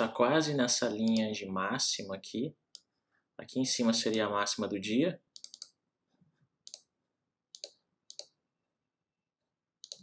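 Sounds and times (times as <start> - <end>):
faint computer mouse clicks: 6.7 - 6.9.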